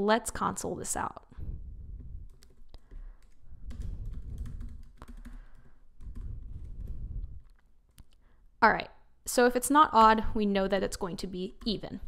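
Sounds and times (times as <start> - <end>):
typing on computer keyboard: 2.0 - 7.0.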